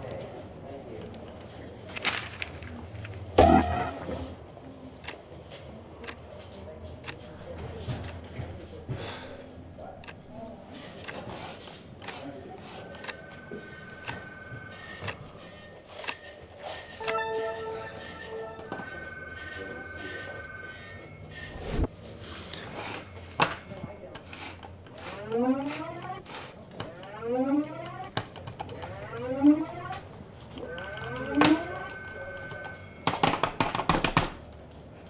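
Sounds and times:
high electronic tone: 0:03.4 - 0:04.2, 0:17.0 - 0:21.9, 0:30.6 - 0:33.0
steady high beep: 0:03.4 - 0:04.2, 0:17.0 - 0:21.9, 0:30.6 - 0:33.1.

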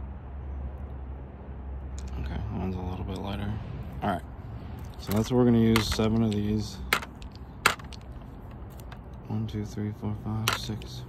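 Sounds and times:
balls clicking on plastic scale: 0:05.0 - 0:09.0.

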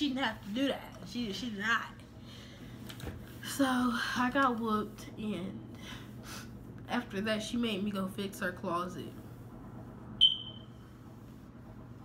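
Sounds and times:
short high-pitched ping: 0:10.2 - 0:10.7.

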